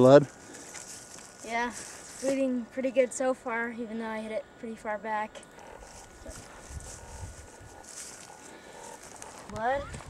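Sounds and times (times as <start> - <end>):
footsteps through brush: 0.0 - 3.0, 5.5 - 10.0.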